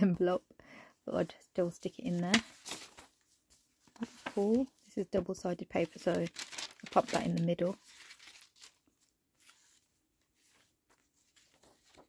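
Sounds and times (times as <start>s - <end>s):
paper pages turning: 2.1s - 4.8s, 5.7s - 12.0s.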